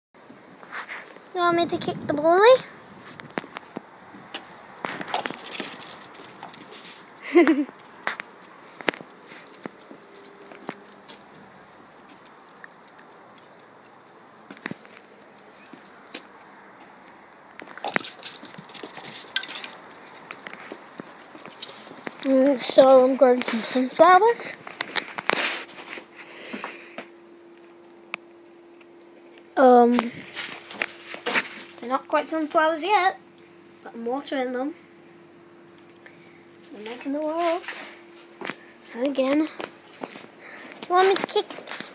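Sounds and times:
faint steady hum: 0.2 - 41.9
sharp light clicks and taps: 7.7 - 16.3.

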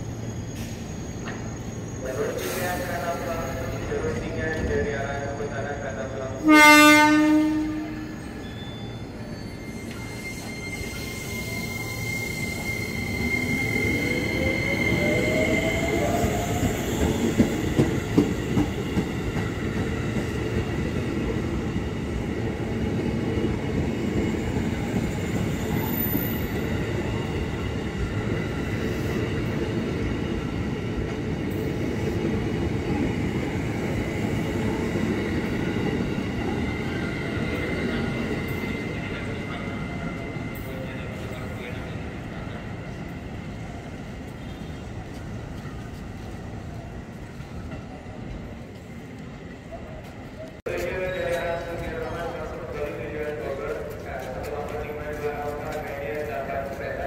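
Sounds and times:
train horn blast: 6.4 - 8.2.

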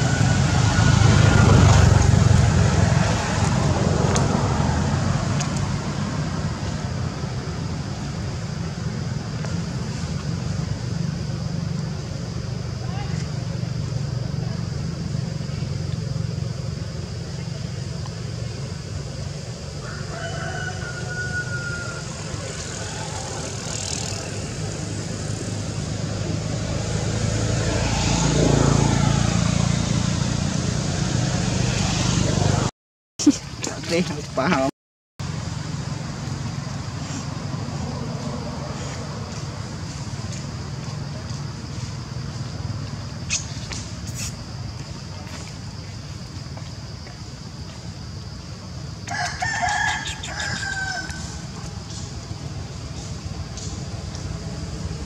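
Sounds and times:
low outdoor rumble: 0.0 - 20.1, 35.2 - 55.0.

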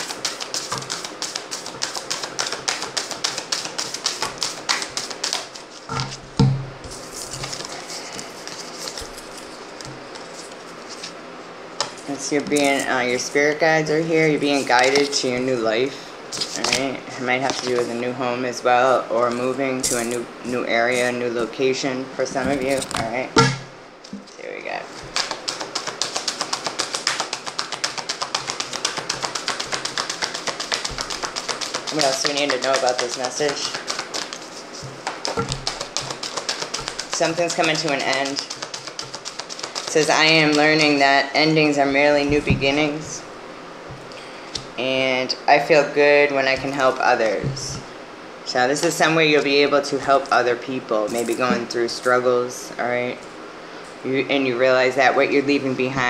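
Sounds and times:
cards being shuffled: 0.0 - 6.2, 6.8 - 11.2, 14.3 - 15.6, 16.3 - 18.0, 22.4 - 43.3
low thump: 5.9 - 6.8.

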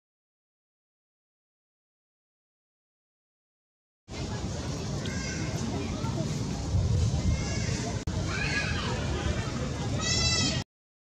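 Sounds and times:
constant low rumble: 4.1 - 10.6.

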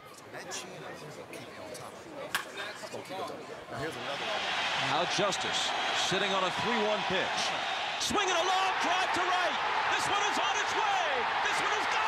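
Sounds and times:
faint indistinct voices: 0.0 - 4.4.

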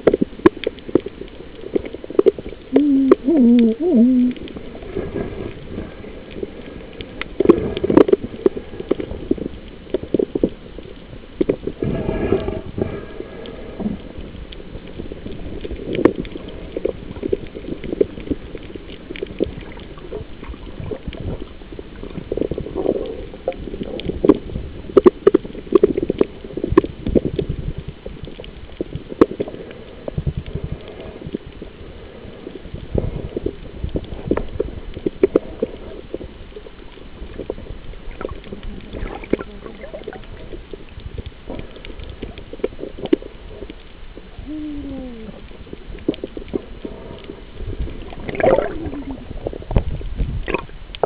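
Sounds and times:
muffled underwater water movement: 0.0 - 51.0
muffled voice underwater: 2.7 - 4.6, 38.5 - 40.5, 44.3 - 45.6, 48.3 - 49.6
underwater clicks and knocks: 46.0 - 51.0.

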